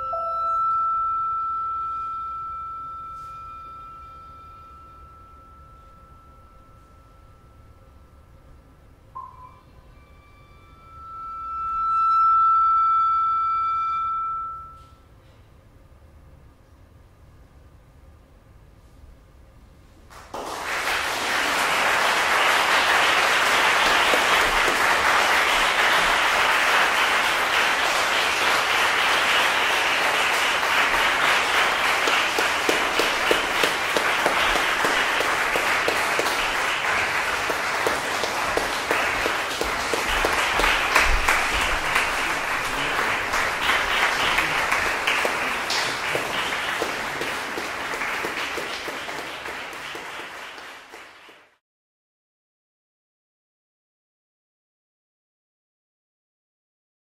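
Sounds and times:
audience applauding: 0:20.1 - 0:51.6.

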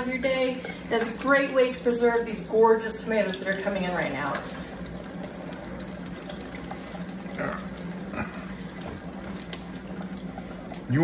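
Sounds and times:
kitchen faucet running: 0:00.0 - 0:11.0
water splashing onto tomatoes: 0:01.0 - 0:11.0.

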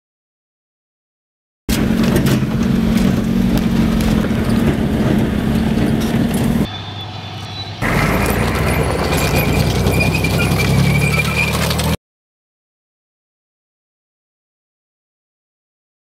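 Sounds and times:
tank engine running: 0:01.7 - 0:12.0
tracks rattling: 0:01.7 - 0:12.0
thin high squeal: 0:06.6 - 0:12.0.

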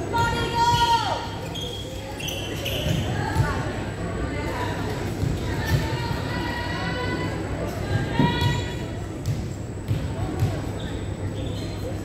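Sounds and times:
spectators chatter echoing: 0:00.0 - 0:12.0.

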